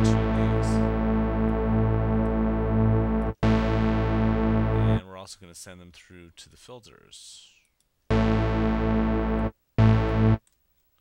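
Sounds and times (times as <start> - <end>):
held synthesizer note: 0.0 - 5.0, 8.1 - 10.4.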